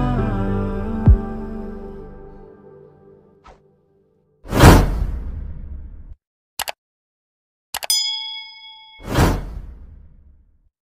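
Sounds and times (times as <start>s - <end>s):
whoosh: 4.5s - 6.2s, 9.0s - 10.3s
bell ding: 7.9s - 9.4s.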